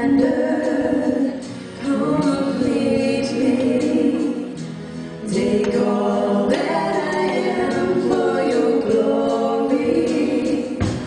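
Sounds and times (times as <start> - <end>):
congregation singing: 0.0 - 11.0
female singers leading: 0.0 - 11.0
live band with drums: 0.0 - 11.0.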